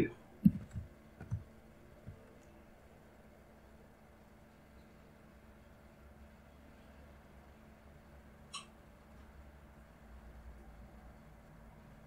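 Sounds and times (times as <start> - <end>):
computer keyboard clicks: 0.4 - 1.4.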